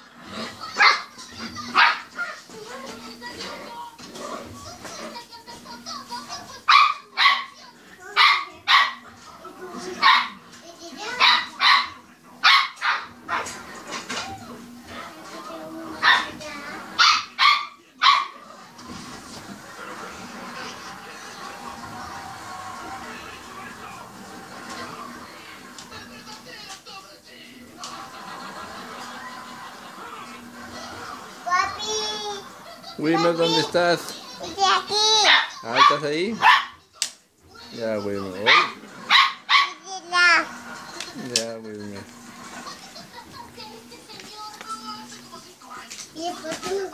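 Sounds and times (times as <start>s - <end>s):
small dog barking: 0.8s - 1.1s, 1.7s - 2.4s, 6.7s - 7.6s, 8.2s - 9.0s, 10.0s - 10.4s, 11.1s - 13.5s, 16.0s - 16.4s, 17.0s - 18.4s, 35.2s - 36.8s, 38.5s - 39.8s
small dog yapping: 35.3s - 36.7s.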